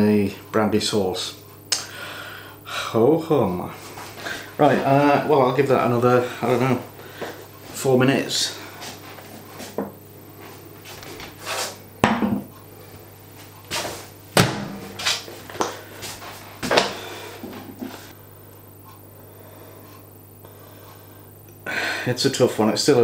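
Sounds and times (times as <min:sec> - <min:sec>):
low steady hum: 0:00.0 - 0:23.0
glass bowl knocking on metal: 0:12.0 - 0:12.5.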